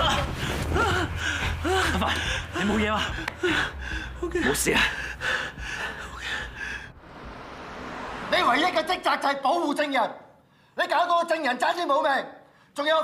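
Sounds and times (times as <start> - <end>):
heavy breathing: 0.3 - 7.0.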